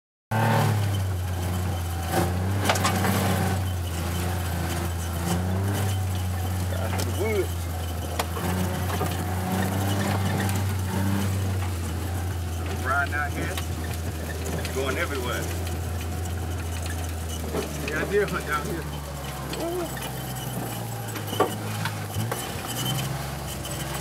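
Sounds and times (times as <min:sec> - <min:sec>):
low engine drone: 0:00.3 - 0:24.0
vehicle body knocking and rattling: 0:00.6 - 0:24.0.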